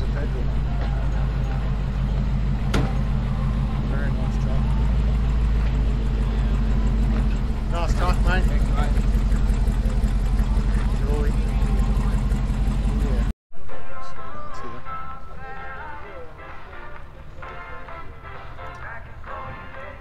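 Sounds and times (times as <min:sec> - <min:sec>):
background voices: 0:00.0 - 0:13.3
vehicle engine running: 0:00.0 - 0:13.4.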